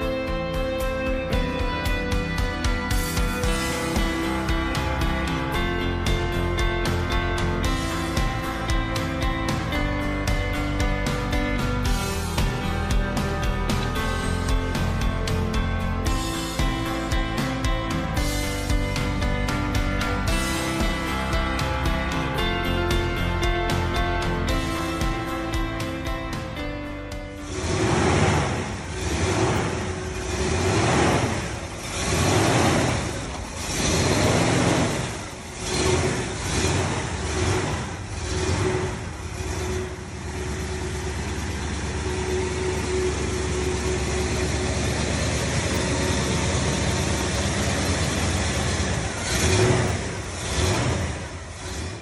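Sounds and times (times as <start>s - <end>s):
car engine revving and idling: 0.0s - 52.0s.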